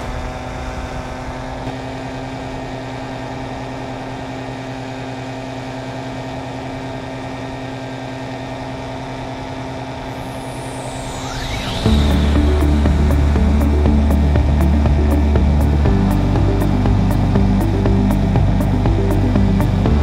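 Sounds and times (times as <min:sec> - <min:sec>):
paramotor engine drone: 0:00.0 - 0:20.0
faint sweeping high tone: 0:09.8 - 0:20.0.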